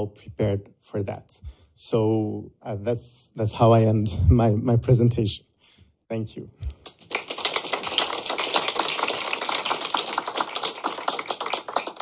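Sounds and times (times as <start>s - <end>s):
audience applauding: 6.8s - 12.0s.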